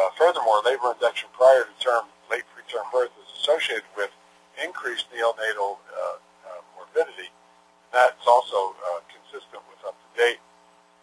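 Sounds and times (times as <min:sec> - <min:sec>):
man lecturing over radio line: 0:00.0 - 0:07.3, 0:08.0 - 0:10.4
faint steady hum: 0:00.0 - 0:11.0.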